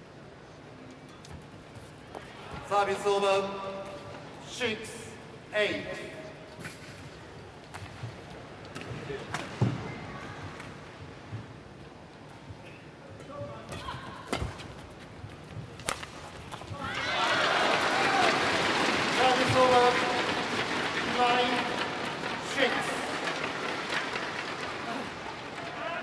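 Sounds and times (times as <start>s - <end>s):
racket hitting shuttlecock: 15.8s - 16.6s
crowd shouts: 16.8s - 21.8s, 24.6s - 26.0s
crowd cheering and applauding: 16.9s - 26.0s.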